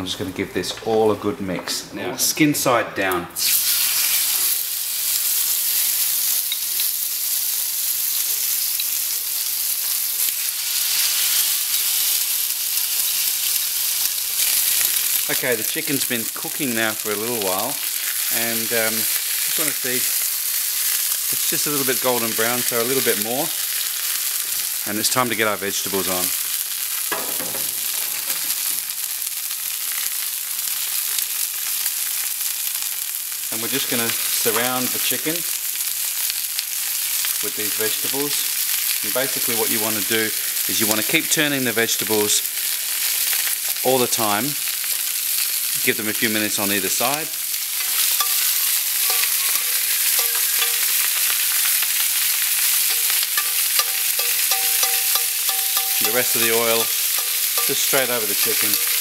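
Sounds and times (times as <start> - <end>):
meat sizzling on hot plate: 3.4 - 59.0
vegetables laid on hot plate: 45.3 - 59.0
spatula scraping and clicking: 47.8 - 51.8, 52.7 - 59.0.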